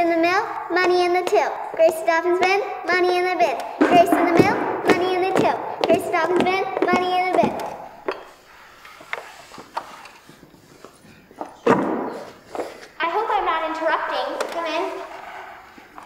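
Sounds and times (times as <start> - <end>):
child's voice: 0.0 - 7.8, 13.0 - 15.1
footsteps on wooden stage: 0.6 - 8.4
sharp thump: 3.6 - 7.8, 11.6 - 12.3.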